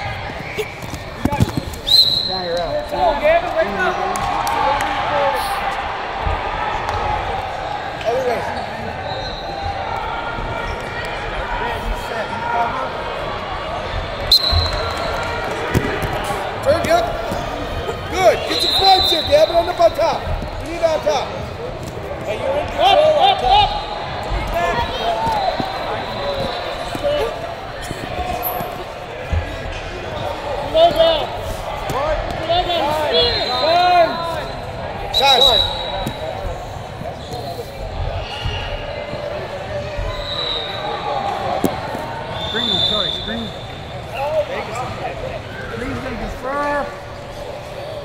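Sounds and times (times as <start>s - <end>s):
echoing crowd voices: 0.0s - 48.0s
shoes squeaking on mat: 0.2s - 2.5s, 24.5s - 29.6s.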